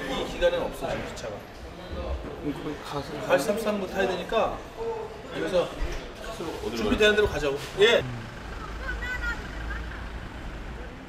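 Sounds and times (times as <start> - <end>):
traffic rumble: 6.7 - 11.0.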